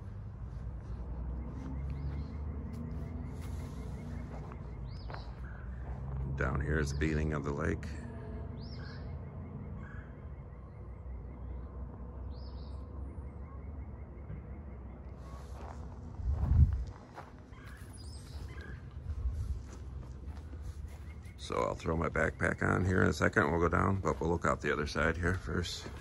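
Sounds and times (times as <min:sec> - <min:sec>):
faint bird chirps: 0:00.0 - 0:26.0
low wind rumble on microphone: 0:15.3 - 0:22.6
loud low bump of wind buffeting: 0:16.2 - 0:17.1.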